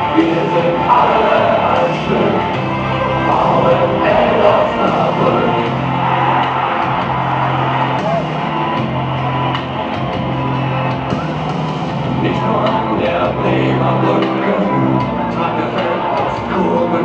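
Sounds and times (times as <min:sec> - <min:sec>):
crowd voices: 0:00.0 - 0:17.0
rock music over loudspeakers: 0:00.0 - 0:17.0.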